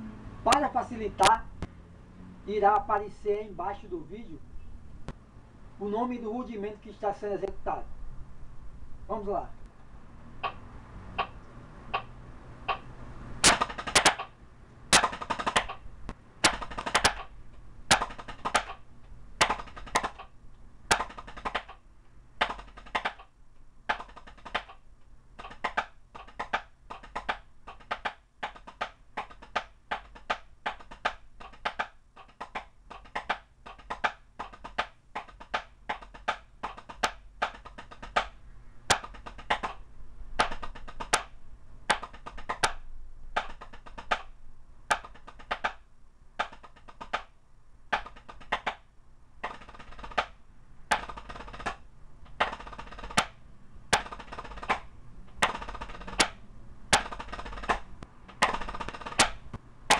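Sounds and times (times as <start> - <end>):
metronome ticking: 10.4 - 10.6, 11.2 - 12.9
drumsticks striking practice pad: 10.4 - 17.3, 17.9 - 18.8, 19.4 - 20.3, 20.9 - 21.8, 25.4 - 39.8, 40.4 - 44.3, 49.4 - 59.9.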